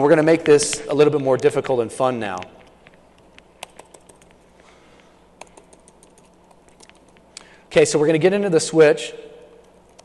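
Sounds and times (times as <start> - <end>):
laptop keystrokes: 2.8 - 4.4, 5.4 - 7.2.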